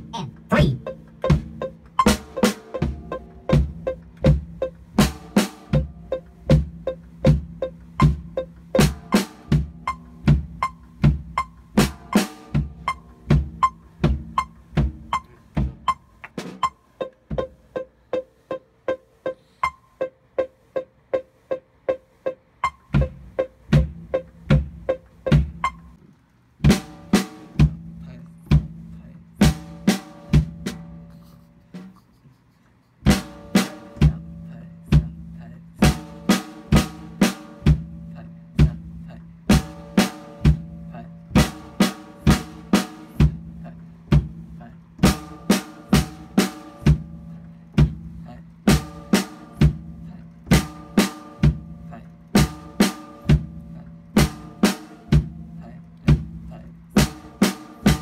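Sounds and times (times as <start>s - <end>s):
drum kit steady beat: 0.0s - 26.0s, 26.6s - 58.0s.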